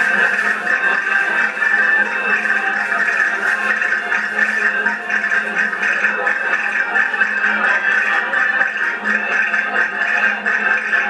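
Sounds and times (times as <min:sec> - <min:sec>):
accordion dance tune: 0:00.0 - 0:11.0.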